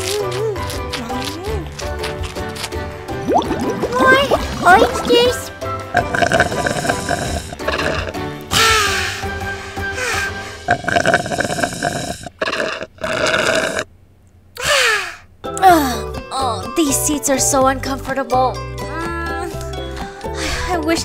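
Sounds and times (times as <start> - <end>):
background music: 0.0 - 12.2, 15.4 - 21.0
slurping through a straw: 3.2 - 5.4, 6.0 - 8.2, 10.7 - 13.9.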